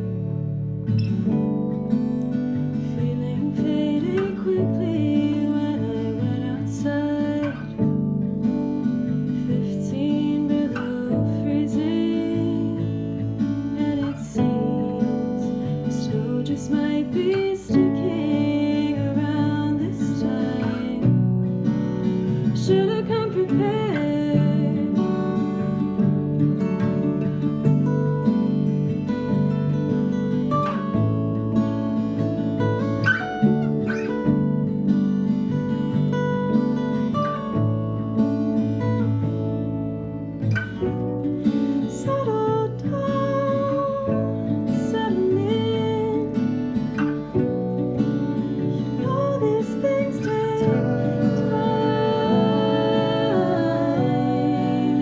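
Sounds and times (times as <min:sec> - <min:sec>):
acoustic guitars strummed: 0:00.0 - 0:55.0
woman singing: 0:02.7 - 0:26.1, 0:40.6 - 0:55.0.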